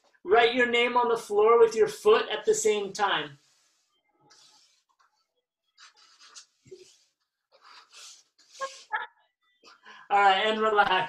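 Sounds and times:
soft breathy laughter: 5.8 - 10.0.

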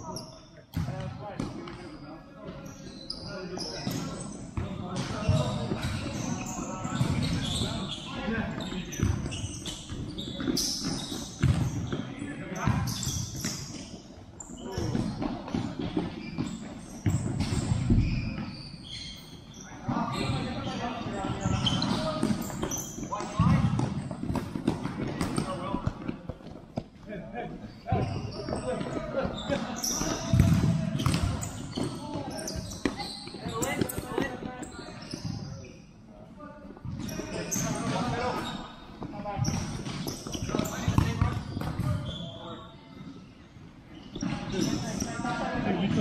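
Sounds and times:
ball kicked and bouncing: 9.9 - 13.9, 21.8 - 26.9, 27.9 - 34.5.

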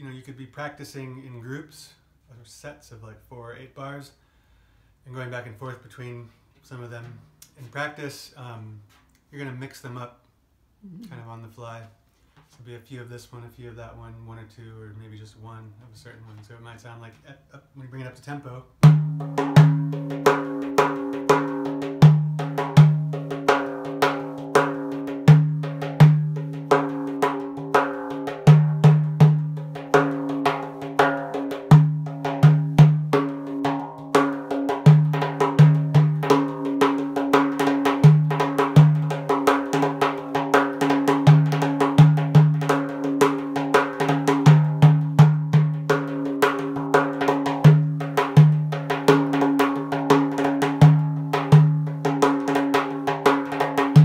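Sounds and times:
frame drum edge strokes and rolls: 18.8 - 54.0.

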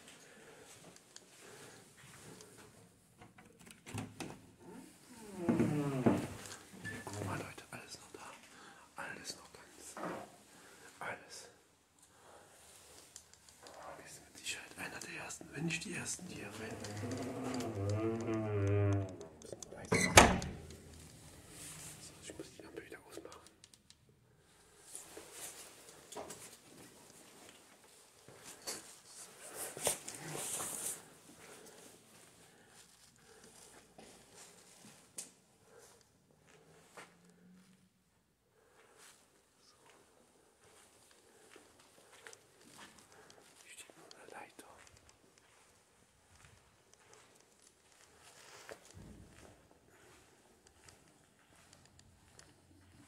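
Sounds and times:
footsteps and shuffling: 38.7 - 53.0.

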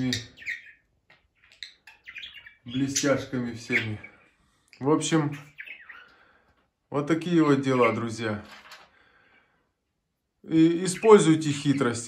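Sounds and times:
budgerigar chirps: 0.0 - 4.2, 5.3 - 6.2.

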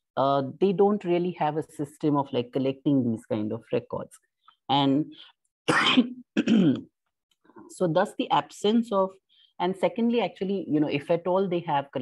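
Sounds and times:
woman clearing her throat: 5.7 - 6.9.

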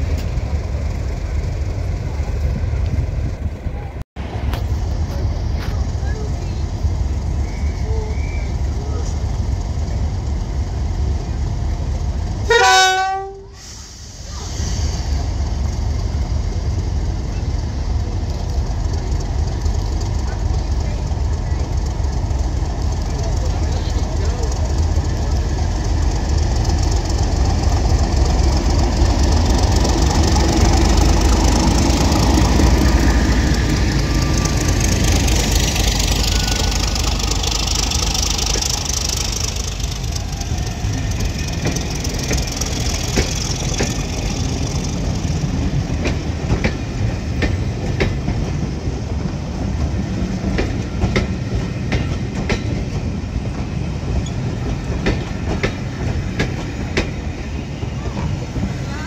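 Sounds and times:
diesel train rumbling: 0.0 - 59.0
train wheels clacking on track: 14.2 - 59.0.

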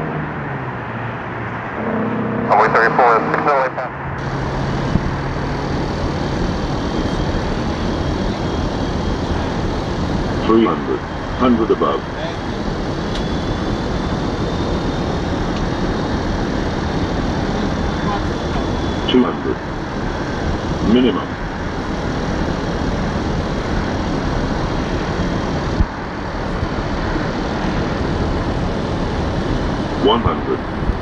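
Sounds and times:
jet engine rushing: 0.0 - 31.0
radio voice: 2.5 - 4.0, 10.4 - 12.7, 17.9 - 19.6, 20.8 - 21.3, 30.0 - 30.7.

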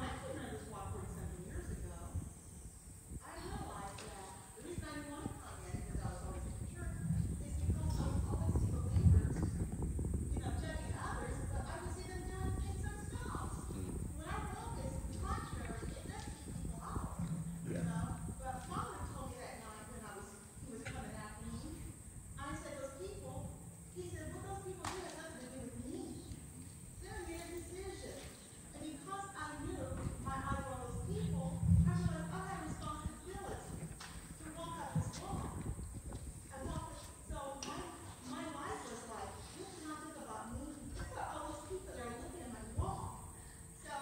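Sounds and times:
irregular low thumping: 5.8 - 19.4, 29.6 - 36.8
distant woman speaking: 10.4 - 26.4.

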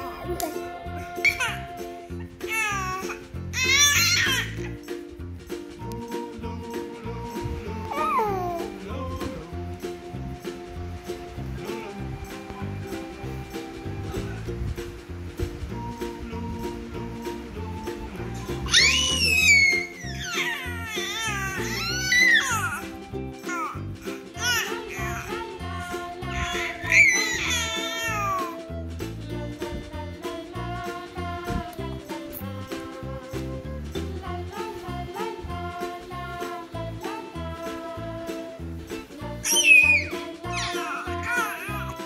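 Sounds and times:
background music with beat: 0.0 - 42.0
baby squealing: 1.2 - 1.6, 2.5 - 4.8, 7.9 - 8.7, 18.7 - 22.8, 23.5 - 25.3, 26.2 - 28.6, 39.4 - 42.0.

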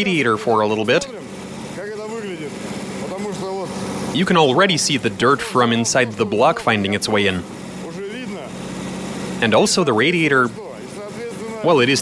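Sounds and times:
person speaking: 0.0 - 8.6, 9.3 - 12.0
car engine idling: 0.0 - 12.0.

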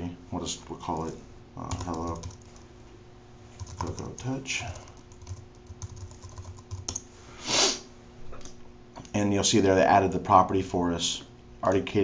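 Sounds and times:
fast keyboard typing: 1.0 - 2.6, 3.6 - 7.0
short breath hiss: 7.3 - 7.9.

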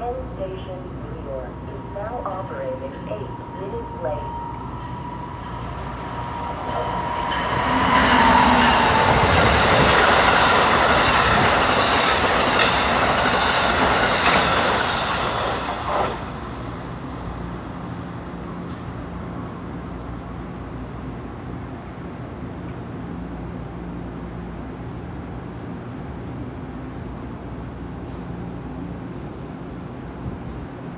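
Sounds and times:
high locomotive tone: 0.0 - 18.2
train wheels rushing on rails: 4.9 - 17.5.

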